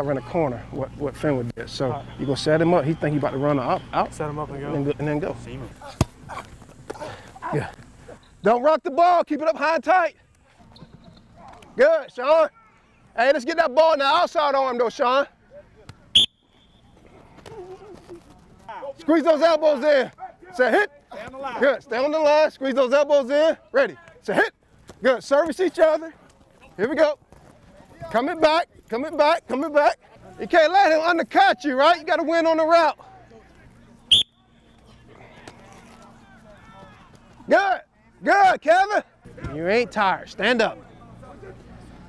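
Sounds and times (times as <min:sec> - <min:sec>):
shrill whistle blast: 0:16.1 - 0:16.8, 0:34.1 - 0:34.5.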